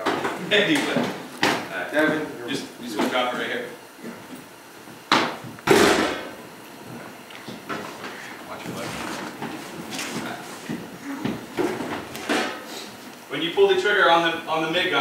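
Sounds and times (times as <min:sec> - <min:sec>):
low voices murmuring: 0:10.2 - 0:11.6.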